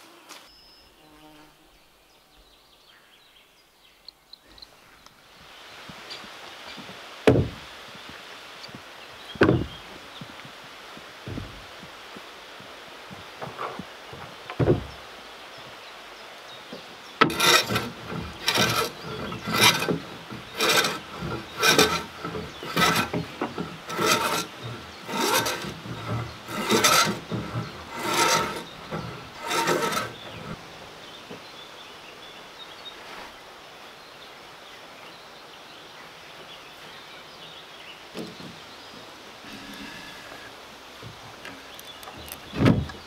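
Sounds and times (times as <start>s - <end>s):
hand tool rasping on wood: 17.2s - 30.6s.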